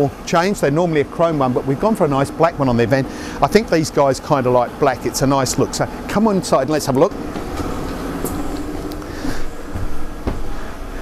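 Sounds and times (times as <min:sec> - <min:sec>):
faint hum: 0:00.0 - 0:11.0
steady rushing background: 0:06.9 - 0:11.0
dull thumps on van floor: 0:08.2 - 0:10.6.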